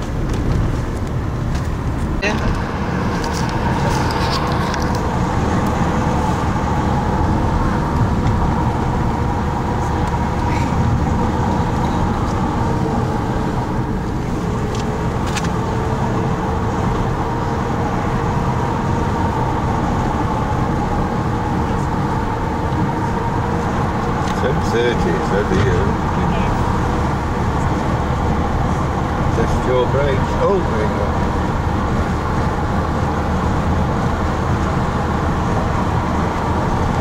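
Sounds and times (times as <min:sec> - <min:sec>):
car engine droning: 0:00.0 - 0:37.0
road noise: 0:00.0 - 0:37.0.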